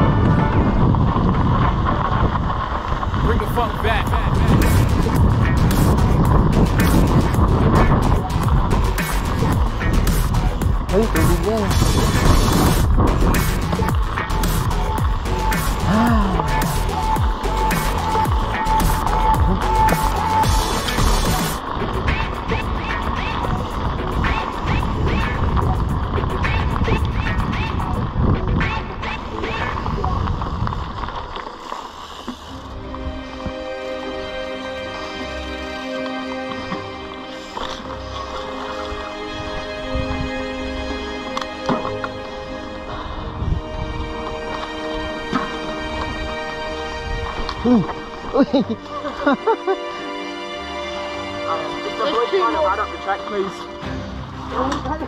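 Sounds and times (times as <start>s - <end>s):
wind rushing over microphone: 0.0s - 20.9s, 21.5s - 31.4s, 38.9s - 40.9s, 42.4s - 48.3s
music: 0.0s - 31.1s, 32.4s - 55.0s
bike tyres crunching on gravel: 0.0s - 50.0s
indistinct voices: 15.6s - 18.4s.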